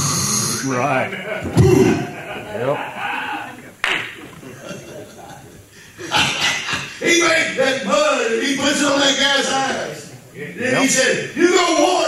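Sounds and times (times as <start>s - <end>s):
person laughing into microphone: 0.9s - 3.7s, 4.4s - 7.0s.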